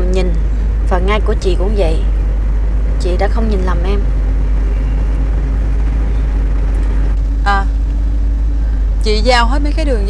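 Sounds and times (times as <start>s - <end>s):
car engine and road rumble: 0.0s - 10.0s
faint constant hum: 0.0s - 10.0s.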